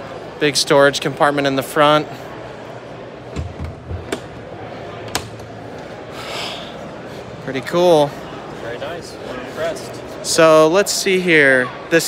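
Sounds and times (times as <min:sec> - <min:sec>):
exhibition hall hubbub: 0:00.0 - 0:12.0.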